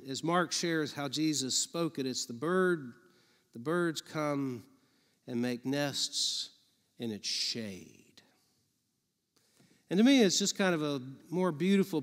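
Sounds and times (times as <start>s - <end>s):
man talking: 0.0s - 3.0s, 3.6s - 8.3s, 9.9s - 12.0s.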